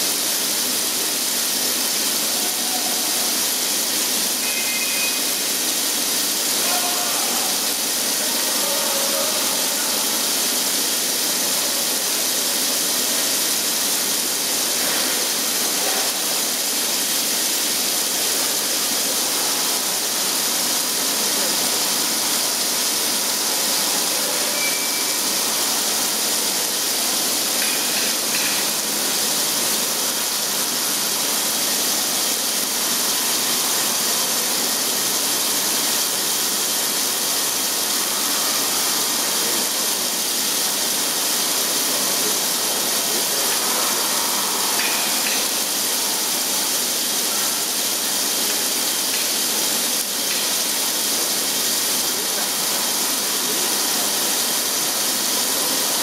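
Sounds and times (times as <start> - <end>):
coolant spray hissing: 0.0 - 56.0.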